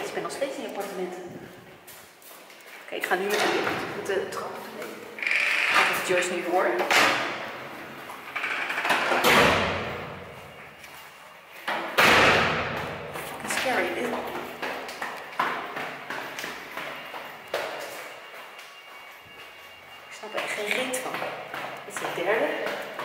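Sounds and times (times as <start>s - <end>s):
footsteps going down stairs: 0.0s - 5.1s, 9.7s - 23.0s.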